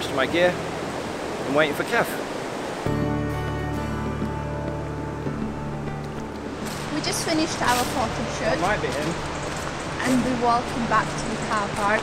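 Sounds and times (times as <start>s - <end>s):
river water rushing over a weir: 0.0s - 3.0s, 6.2s - 12.0s
background music with low held notes: 2.9s - 12.0s.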